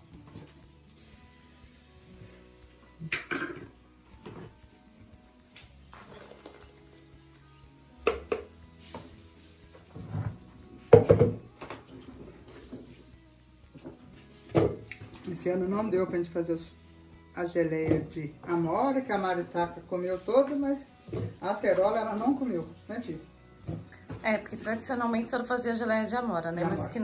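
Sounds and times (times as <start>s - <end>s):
faint background music: 0.0s - 27.0s
plastic jar knocking on pot: 8.0s - 8.5s, 10.9s - 11.4s.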